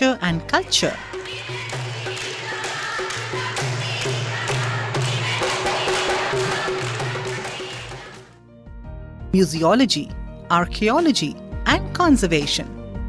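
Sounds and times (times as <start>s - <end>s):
steady drum beat: 1.0s - 8.3s.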